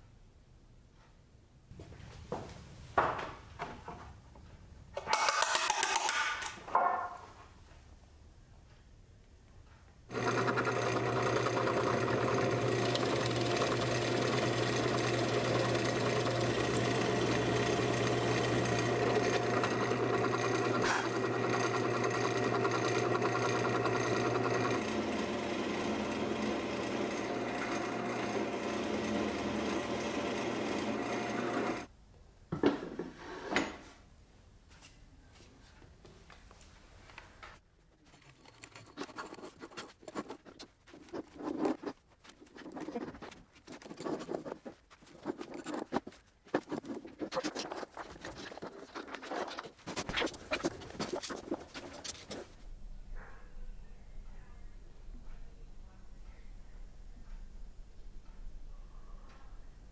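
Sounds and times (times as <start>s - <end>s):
drill press motor boring wood: 10.1s - 31.9s.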